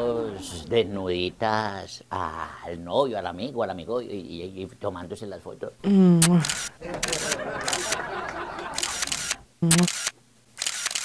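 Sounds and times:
camera shutter clicks: 0:06.2 - 0:08.0, 0:08.7 - 0:11.0.

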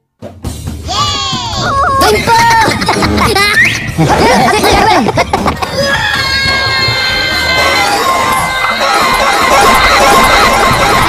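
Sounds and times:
high-pitched cartoon voices: 0:00.8 - 0:11.0
squeaky voices cheering: 0:05.7 - 0:11.0.

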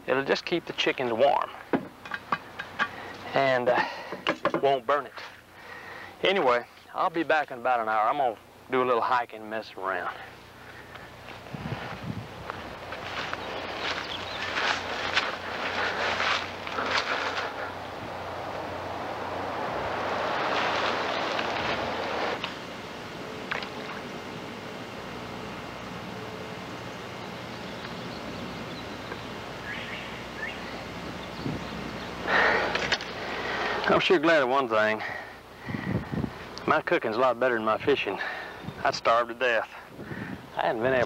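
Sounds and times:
rustling: 0:10.6 - 0:17.9, 0:20.2 - 0:22.5
wind noise: 0:11.4 - 0:12.8, 0:31.1 - 0:31.9, 0:35.6 - 0:36.5, 0:39.9 - 0:41.0
loud rushing noise: 0:18.0 - 0:22.5.

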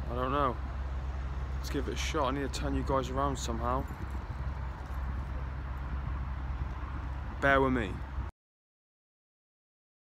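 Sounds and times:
low outdoor rumble: 0:00.0 - 0:08.3.

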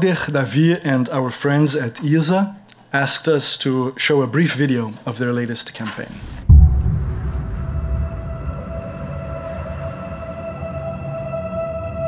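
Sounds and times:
low rumble: 0:06.2 - 0:10.5
held drone tone: 0:06.5 - 0:12.0.

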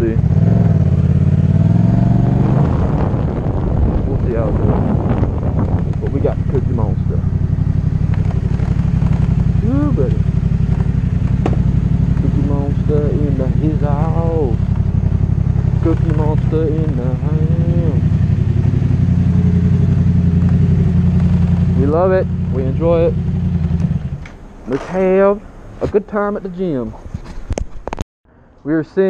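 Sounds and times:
motorcycle engine deep rumble: 0:00.0 - 0:28.0.

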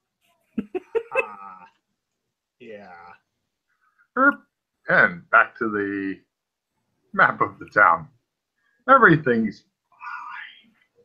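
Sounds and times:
person saying uh: 0:00.7 - 0:01.8.

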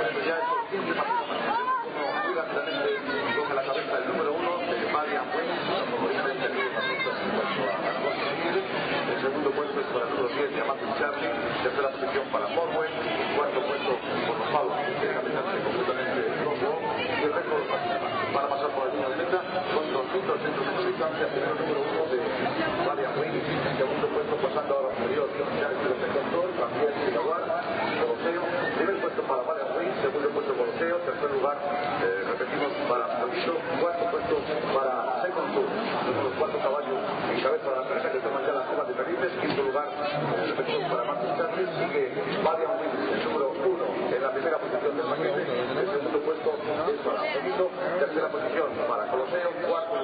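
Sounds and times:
man giving race commentary: 0:00.0 - 0:50.0.

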